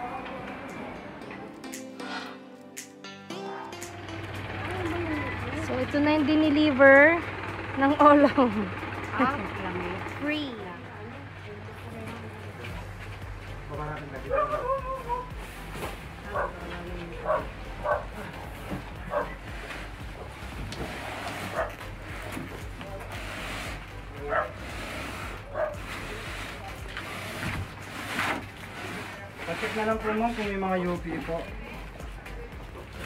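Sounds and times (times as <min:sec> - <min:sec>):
voices: 0:03.7 - 0:20.4
dog barking: 0:14.3 - 0:15.3, 0:16.3 - 0:16.6, 0:17.2 - 0:18.1, 0:19.1 - 0:19.4, 0:21.5 - 0:21.8, 0:24.3 - 0:24.6, 0:25.5 - 0:25.8.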